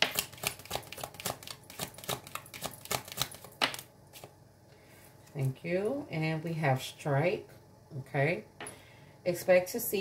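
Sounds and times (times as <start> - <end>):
cards being shuffled: 0.0 - 4.4.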